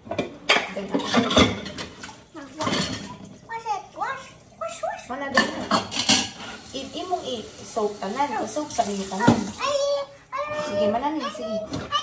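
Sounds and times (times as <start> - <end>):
dishes clattering in a metal sink: 0.0 - 3.4, 5.2 - 6.9, 8.8 - 9.6.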